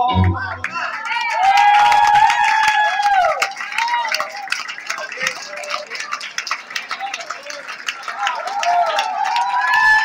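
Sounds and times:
audience clapping: 0.0 - 10.0.

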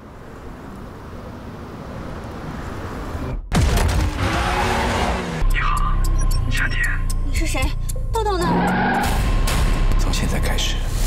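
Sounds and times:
film music: 4.2 - 11.0.

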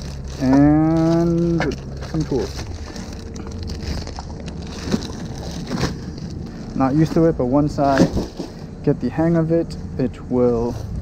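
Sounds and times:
plastic wrap crinkling: 0.0 - 8.7
wind buffeting microphone: 9.8 - 11.0.

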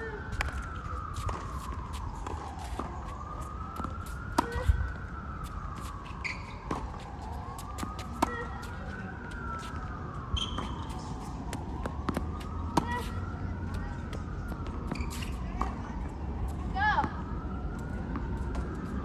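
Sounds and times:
emergency vehicle siren wailing: 0.0 - 19.0
tennis ball struck and bouncing: 6.5 - 7.0, 7.8 - 8.6.

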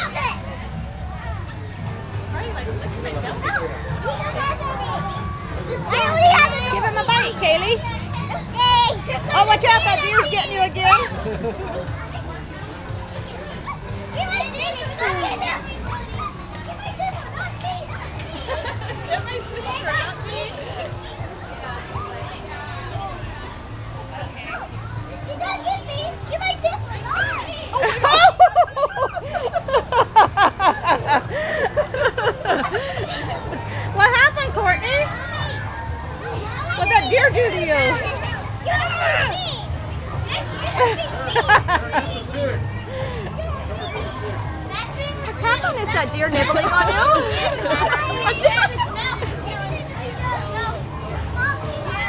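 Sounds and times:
children chattering and squealing: 0.0 - 52.0
children squealing excitedly: 26.9 - 39.7.

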